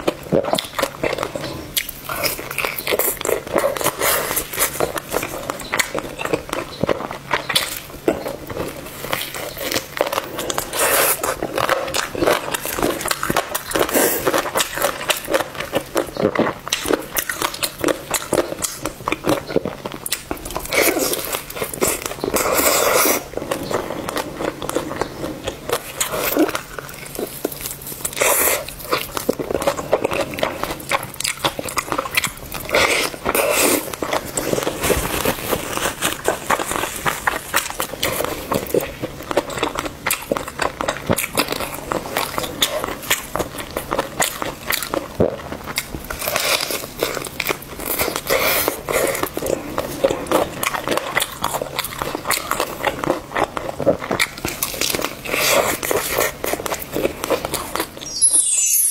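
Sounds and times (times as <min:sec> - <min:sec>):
biting and chewing food: 0:00.0 - 0:58.2.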